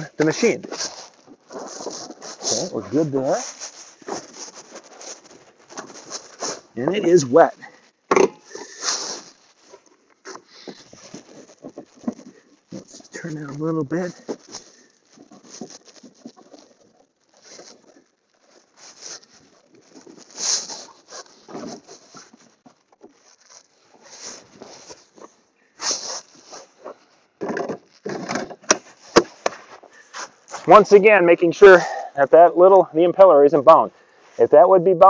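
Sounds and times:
scraping and crunching of wet snow: 0.0 - 7.9, 8.5 - 31.9.

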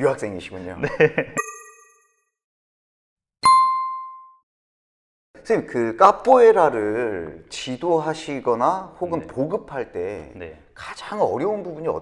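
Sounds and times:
bright bell ding: 1.4 - 2.1, 3.4 - 4.4.

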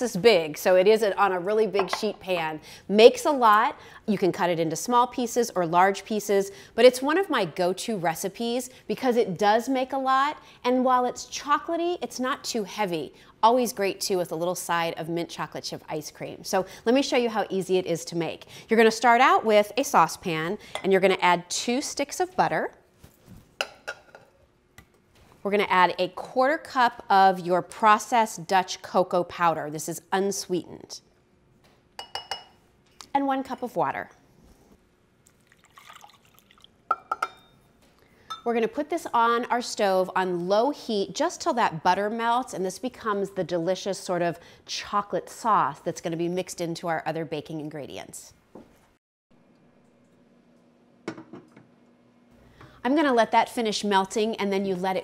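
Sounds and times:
woman speaking: 0.0 - 22.8, 25.4 - 31.1, 33.0 - 34.1, 38.4 - 48.4, 52.8 - 55.0
water trickling into saucepan: 35.2 - 36.8.

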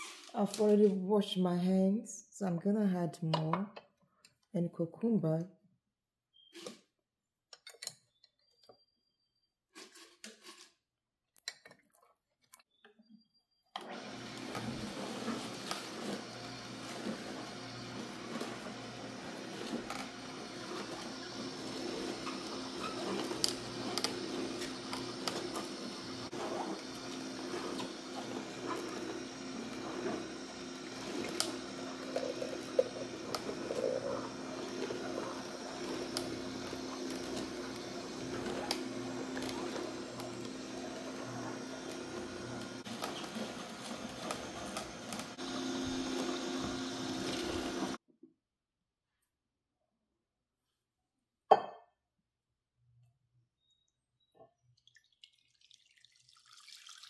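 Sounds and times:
juicer motor humming: 13.8 - 48.0
auger crushing vegetables: 13.9 - 48.0.

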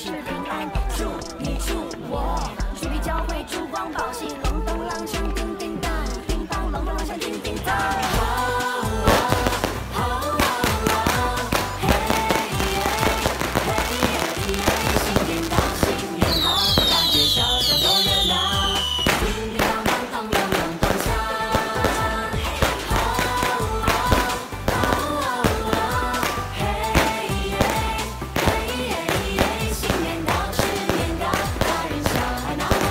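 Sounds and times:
upbeat festive song: 0.0 - 32.9
firecrackers popping and crackling: 9.0 - 32.9
falling firework whistles: 15.9 - 20.8.

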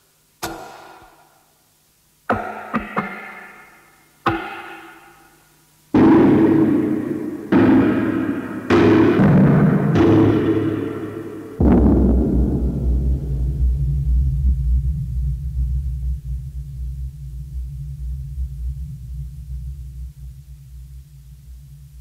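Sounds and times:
struck resonant attacks ringing: 6.0 - 12.7
deep steady rumble: 11.6 - 22.0.

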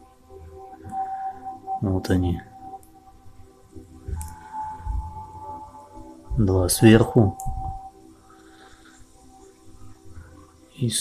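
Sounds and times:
steady high tone: 0.5 - 11.0
soft low thumps: 4.1 - 5.3.

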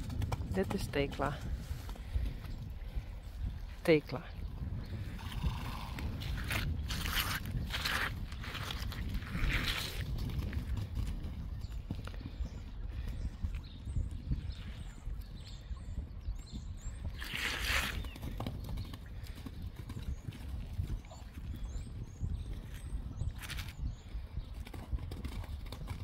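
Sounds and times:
hoofbeats on sand: 0.0 - 3.1, 5.0 - 26.0
horse breathy snorts: 5.1 - 6.2.

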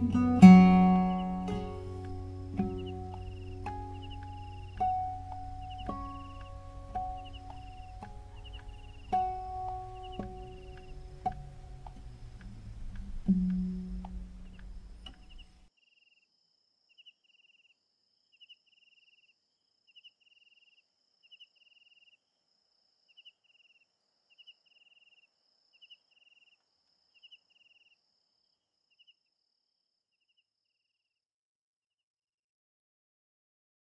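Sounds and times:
acoustic guitar chord: 0.0 - 15.5
crickets chirping: 0.0 - 30.9.

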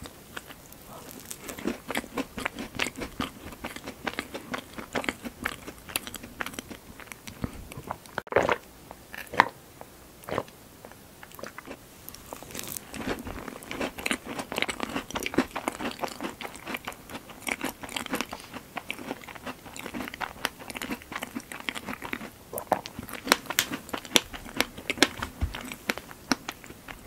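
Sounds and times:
chewing with wet crackles: 0.0 - 8.6, 10.2 - 27.0.

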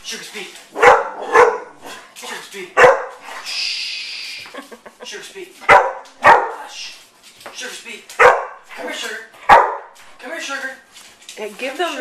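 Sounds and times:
dog barking: 0.8 - 2.0, 2.8 - 3.4, 5.6 - 6.7, 8.2 - 10.0
dog vocal sounds: 0.8 - 2.2, 2.8 - 3.6.

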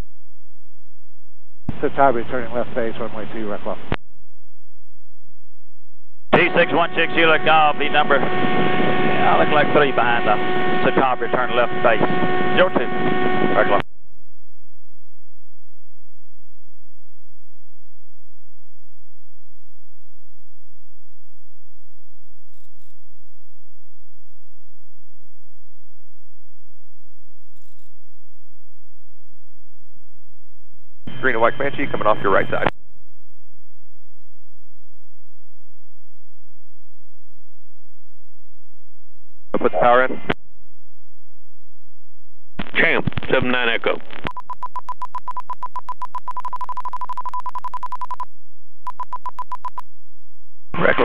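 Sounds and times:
light aircraft engine drone: 6.4 - 13.8
stall warning beeping: 44.3 - 48.2, 48.9 - 49.8.

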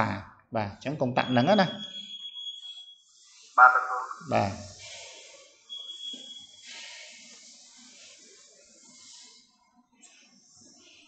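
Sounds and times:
room noise and hiss: 3.1 - 11.0
steady high tone: 3.6 - 4.5.

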